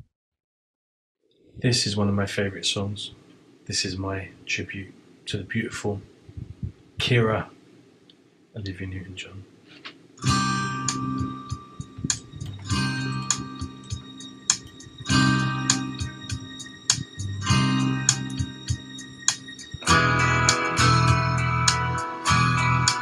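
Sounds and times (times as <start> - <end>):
steady bass: 6.3 - 7.1, 10.2 - 23.0
guitar chords ringing: 10.2 - 23.0.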